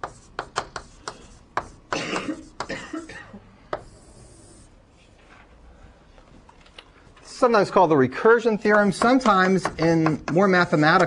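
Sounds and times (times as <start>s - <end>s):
chalk tapping on board: 0.0s - 2.8s, 8.6s - 11.0s.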